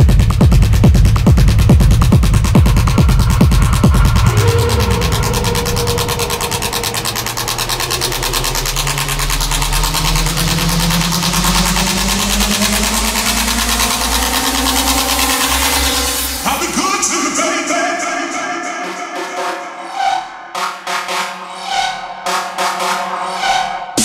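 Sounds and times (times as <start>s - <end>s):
low drone: 0.0s - 22.6s
synth tone rising in pitch: 1.3s - 24.0s.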